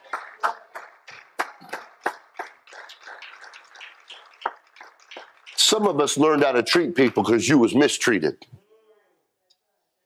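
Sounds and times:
people clapping: 0.0s - 7.8s.

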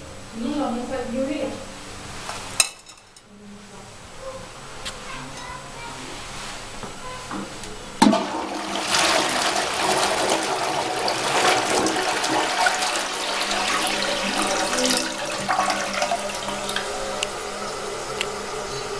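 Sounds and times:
toilet flush lever clunk: 8.0s - 9.3s
water rushing through toilet bowl: 8.0s - 18.9s.

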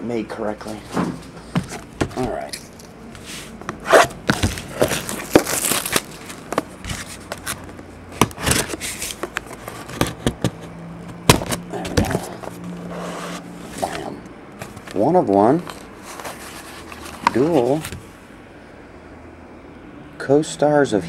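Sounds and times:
box scraping: 3.2s - 15.0s, 15.6s - 18.0s
wrap and box snapping: 3.7s - 10.5s
plastic wrap crinkling: 4.3s - 7.8s.

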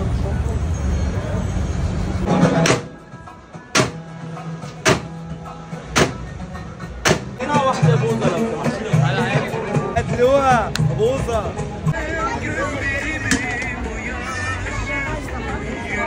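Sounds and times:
wooden pestles banging in metal wells: 4.7s - 5.2s, 5.9s - 6.3s, 7.0s - 7.5s
voices calling out: 5.9s - 16.0s.

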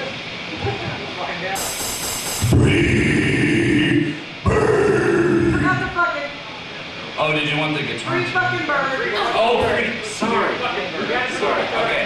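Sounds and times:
guttural growled vocals: 2.5s - 6.0s.

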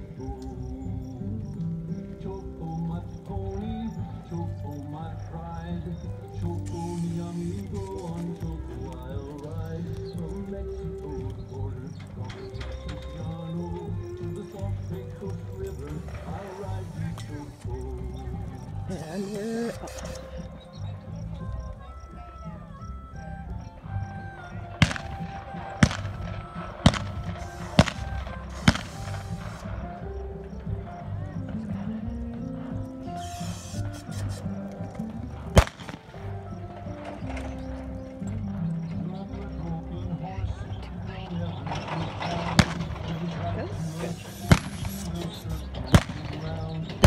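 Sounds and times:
western song over loudspeakers: 0.0s - 47.0s
revolver gunshots: 24.8s - 29.7s, 35.5s - 36.2s, 42.6s - 43.1s, 44.4s - 45.1s, 45.9s - 46.5s.

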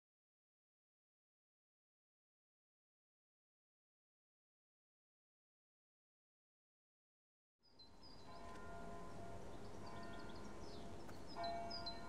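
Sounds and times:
faint bell ringing: 8.2s - 12.0s.

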